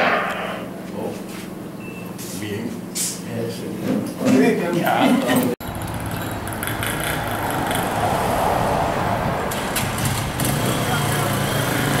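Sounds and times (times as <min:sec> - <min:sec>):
motorcycle engines running: 0:05.6 - 0:12.0
traffic noise: 0:05.6 - 0:12.0.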